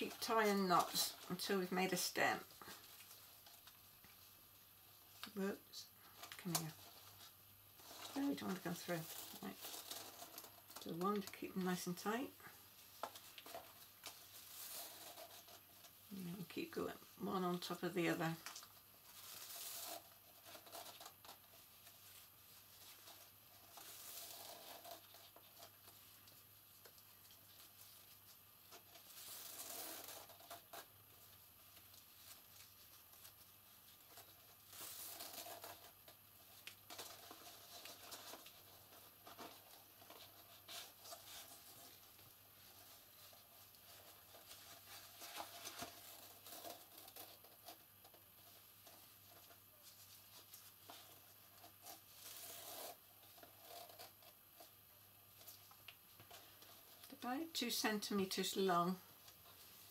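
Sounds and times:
ribbon rustling: 0:06.0 - 0:59.9.

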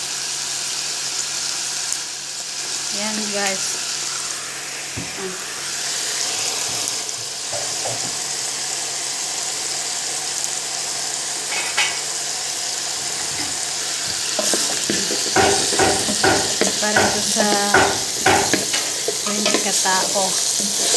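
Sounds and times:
meat sizzling in a pot: 0:00.0 - 0:20.9
spoon knocking against pot: 0:14.4 - 0:19.8.

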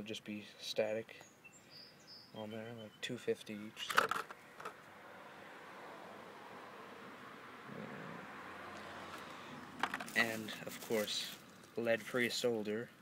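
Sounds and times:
handling clicks: 0:03.8 - 0:04.8.

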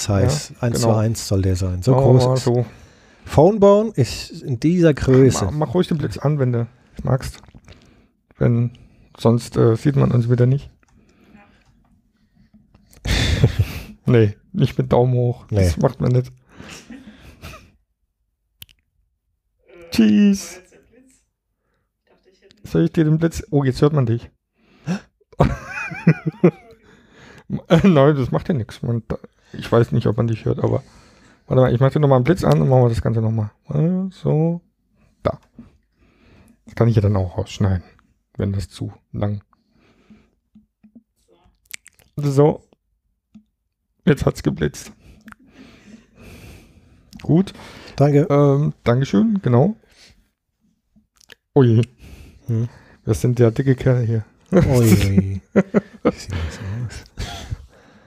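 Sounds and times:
faint breathing: 0:02.6 - 0:03.4, 0:16.4 - 0:17.8, 0:26.8 - 0:27.5, 0:30.7 - 0:31.5, 0:34.9 - 0:36.7, 0:39.6 - 0:40.5, 0:45.0 - 0:48.0, 0:52.0 - 0:53.2, 0:55.7 - 0:58.0.

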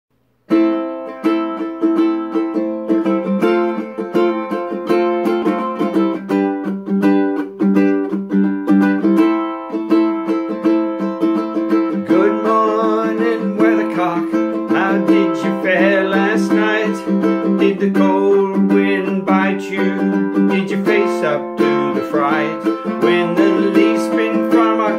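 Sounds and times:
ukulele chords plucked: 0:00.2 - 0:24.9.

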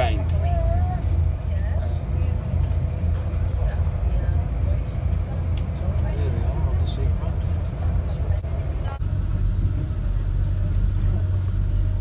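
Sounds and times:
diesel train rumbling: 0:00.0 - 0:12.0.

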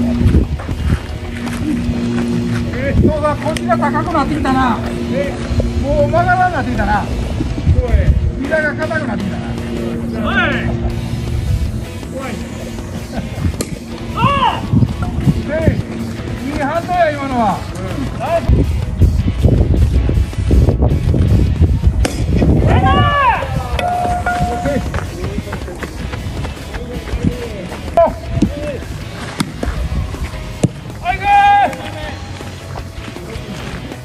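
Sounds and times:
wind rumble on microphone: 0:00.0 - 0:30.5
people laughing: 0:08.5 - 0:11.2, 0:11.9 - 0:17.4, 0:23.7 - 0:28.9
people calling out: 0:08.7 - 0:11.1, 0:11.8 - 0:18.5, 0:22.6 - 0:28.9, 0:31.0 - 0:32.4
players calling out: 0:22.6 - 0:34.0.

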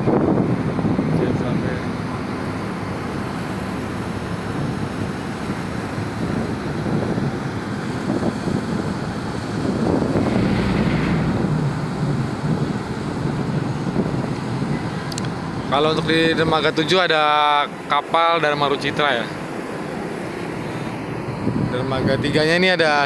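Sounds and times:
wind buffeting microphone: 0:00.0 - 0:16.7, 0:20.9 - 0:22.6
low rumble of ferry: 0:00.0 - 0:23.0.

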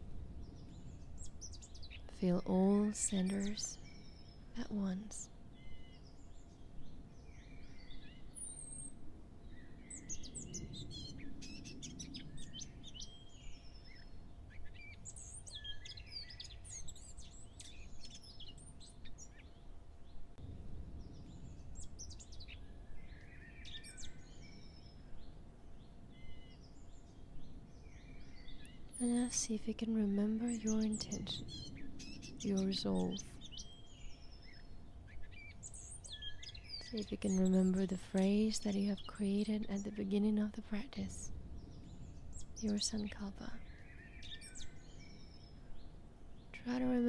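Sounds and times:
faint steady hum: 0:00.0 - 0:47.0
small birds chirping: 0:00.0 - 0:47.0
soft low rumble: 0:00.0 - 0:47.0.

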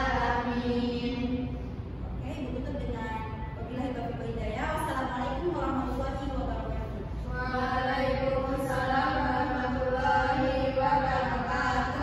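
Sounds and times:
voices chanting slowly: 0:00.0 - 0:01.7, 0:07.2 - 0:12.0.

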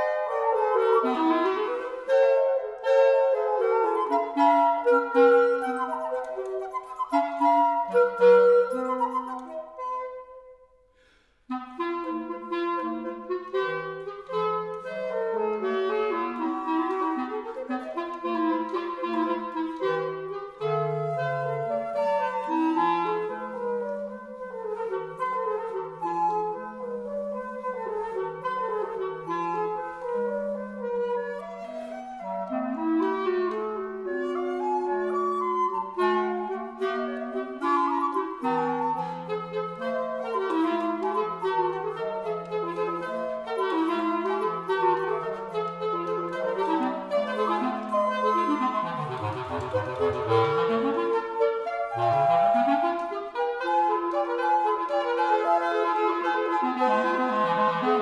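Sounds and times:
woodwind trio playing classical piece: 0:00.0 - 0:58.0.

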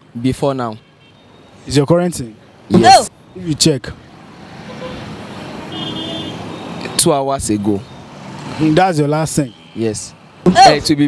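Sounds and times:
passing vehicles: 0:00.0 - 0:11.0.

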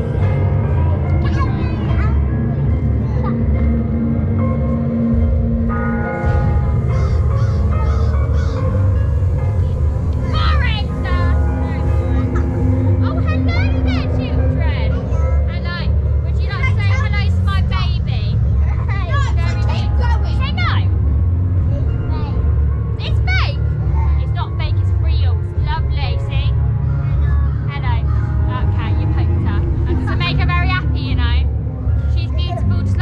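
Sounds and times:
eerie background music: 0:00.0 - 0:33.0
faint voices talking: 0:00.0 - 0:33.0
low rumble: 0:00.0 - 0:33.0.

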